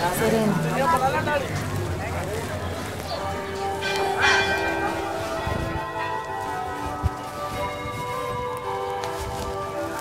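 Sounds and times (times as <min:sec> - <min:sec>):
bells ringing: 0:02.8 - 0:10.0.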